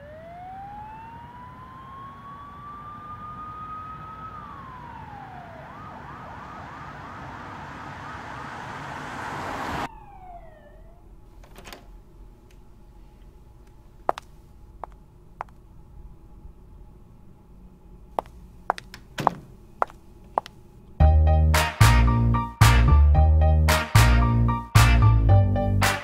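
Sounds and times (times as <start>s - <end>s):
police siren wailing and yelping: 0.0s - 8.7s, 9.6s - 11.2s.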